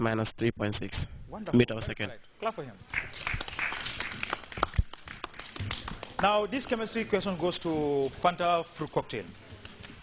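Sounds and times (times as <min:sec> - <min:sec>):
small audience clapping: 0:02.9 - 0:07.2.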